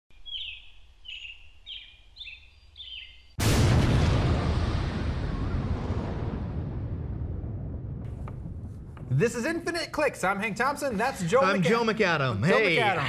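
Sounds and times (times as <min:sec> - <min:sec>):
small bird chirping: 0:00.1 - 0:03.4
loud explosion with rumble: 0:03.4 - 0:09.2.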